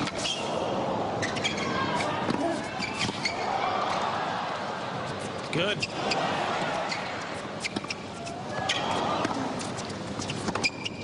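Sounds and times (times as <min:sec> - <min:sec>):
stadium crowd murmur: 0:00.1 - 0:10.2.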